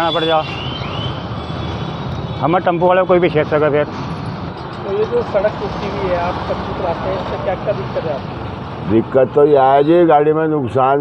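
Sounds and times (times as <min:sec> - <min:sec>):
vehicle engine humming: 0:00.0 - 0:10.3.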